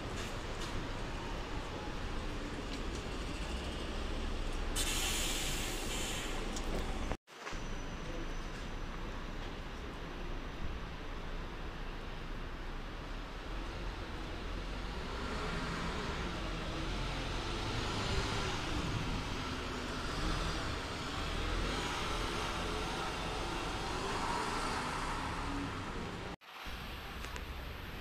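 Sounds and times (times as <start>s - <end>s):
bus engine running: 8.0s - 26.4s.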